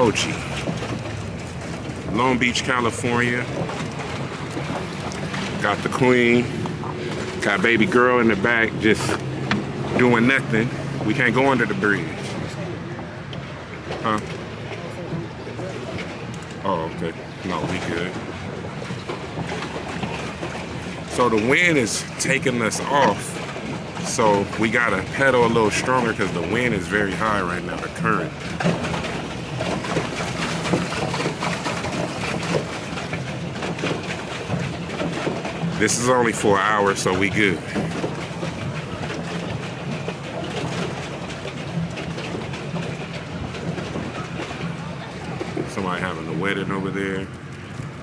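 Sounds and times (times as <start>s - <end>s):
water moving around boat: 0.0s - 48.0s.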